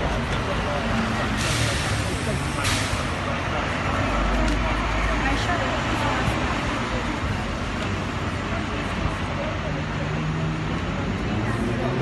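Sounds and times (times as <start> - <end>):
crowd voices: 0.0 - 12.0
street traffic noise: 0.0 - 12.0.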